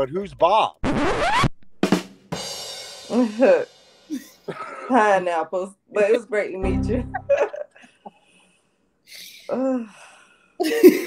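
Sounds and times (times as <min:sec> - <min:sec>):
woman laughing: 0:03.1 - 0:05.2, 0:06.0 - 0:08.0, 0:10.6 - 0:11.0.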